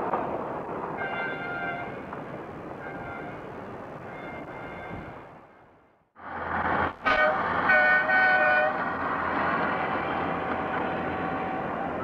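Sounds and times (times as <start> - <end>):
train running noise: 1.0 - 12.0
train horn toots: 7.0 - 8.8.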